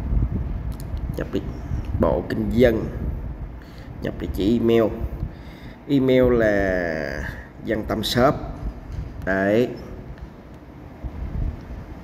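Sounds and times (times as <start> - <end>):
low background rumble: 0.0 - 12.0.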